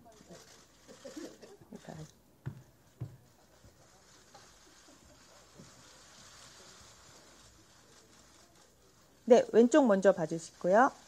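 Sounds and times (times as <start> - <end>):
murmur of voices: 3.2 - 10.8.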